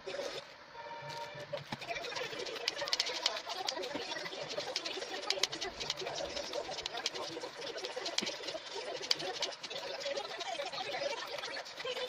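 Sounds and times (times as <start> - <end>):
scissors cutting cardboard: 1.6 - 12.0.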